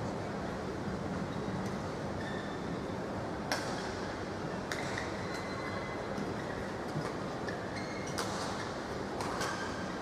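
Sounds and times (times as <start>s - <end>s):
shoe squeaks on court floor: 7.8s - 8.2s.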